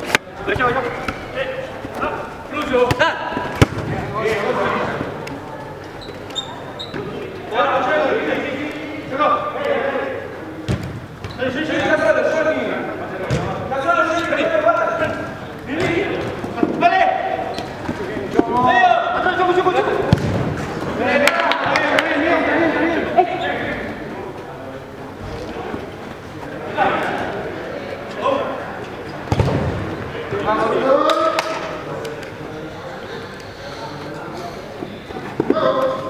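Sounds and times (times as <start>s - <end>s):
players shouting and calling: 0.0s - 36.0s
ball being kicked thuds: 20.1s - 20.5s, 29.3s - 29.8s.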